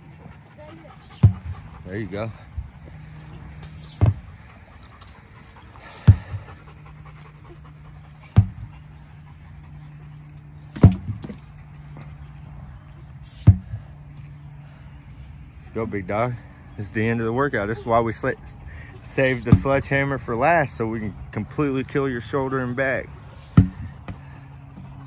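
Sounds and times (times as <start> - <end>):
sledgehammer thuds on tire: 1.1 - 1.6, 3.7 - 4.4, 5.9 - 6.5, 8.2 - 8.7, 10.7 - 11.4, 13.3 - 13.9, 19.4 - 19.8, 23.4 - 24.2.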